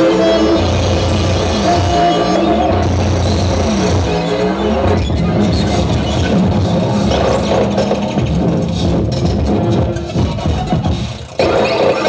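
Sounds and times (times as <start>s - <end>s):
electronic synthesizer drones: 0.0s - 12.0s.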